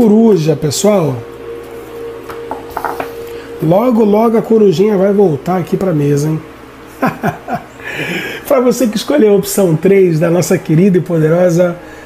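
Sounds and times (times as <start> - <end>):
steady faint tone: 0.0 - 12.0.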